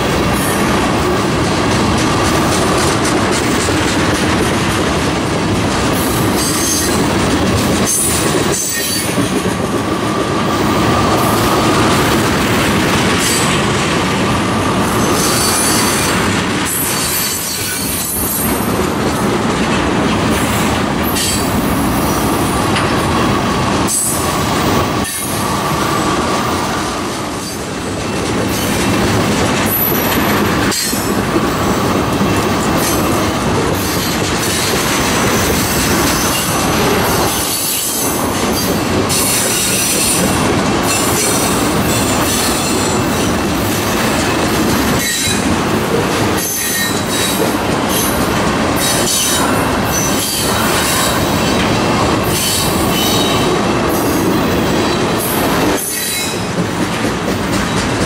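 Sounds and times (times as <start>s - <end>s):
train wheels on rails: 0.0s - 58.0s.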